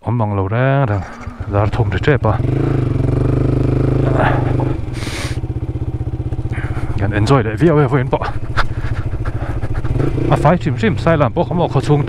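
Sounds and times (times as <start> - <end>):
motorcycle engine at low revs: 0.9 - 12.0.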